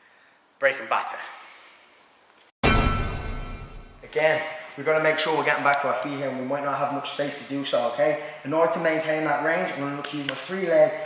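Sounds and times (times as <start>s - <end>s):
musical hit with deep bass: 2.6s - 4.0s.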